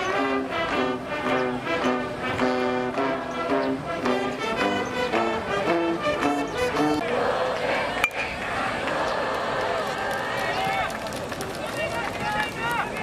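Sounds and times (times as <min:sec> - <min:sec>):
spectators calling out: 0:07.0 - 0:13.0.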